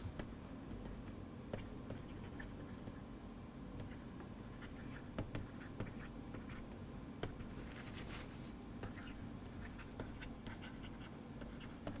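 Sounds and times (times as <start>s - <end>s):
low background hum: 0.0s - 12.0s
stylus tapping and scratching: 0.2s - 3.0s, 3.8s - 8.2s, 8.8s - 12.0s.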